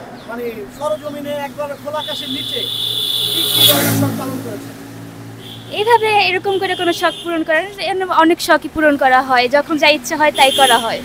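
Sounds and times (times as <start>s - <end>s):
vehicle passing by: 0.0s - 7.0s.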